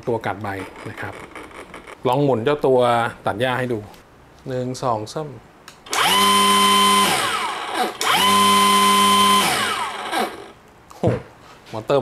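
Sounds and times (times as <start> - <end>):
grass trimmer motor whine: 5.9 - 10.5.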